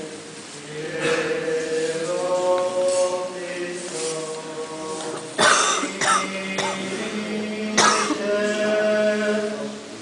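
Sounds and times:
liturgical chanting: 0.0s - 10.0s
loud cough: 5.4s - 6.8s, 7.8s - 8.2s.

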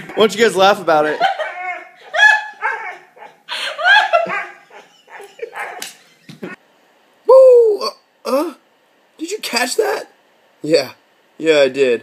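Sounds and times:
dog barking: 4.2s - 5.8s.

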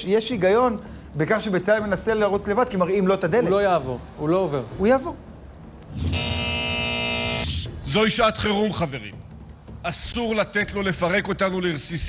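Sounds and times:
held electronic chord: 5.9s - 7.7s
low electronic pulse: 5.9s - 7.7s.

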